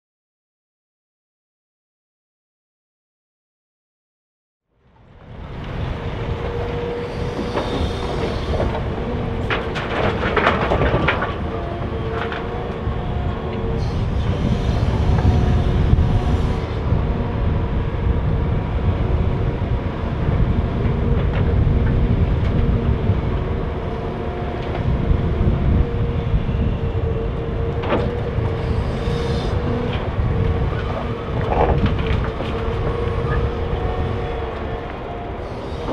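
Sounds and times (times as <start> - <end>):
excavator engine and hydraulics: 4.9 - 35.9.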